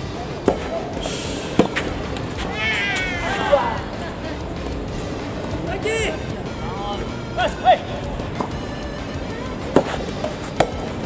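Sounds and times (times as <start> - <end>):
person's high wavering cry: 2.5 - 4.0.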